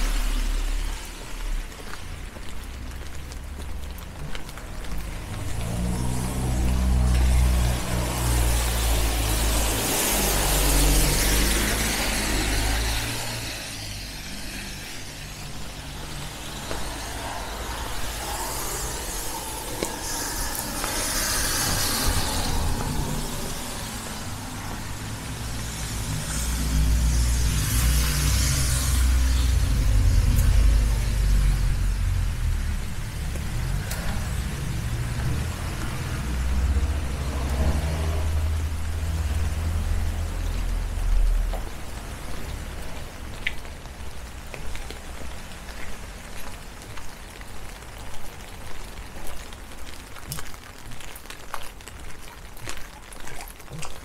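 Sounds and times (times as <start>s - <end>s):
wet tyres hissing: 0.0s - 47.2s.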